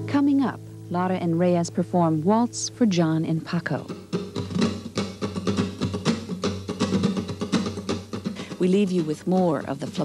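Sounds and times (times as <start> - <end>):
nylon-string guitar duet: 0.0 - 10.0.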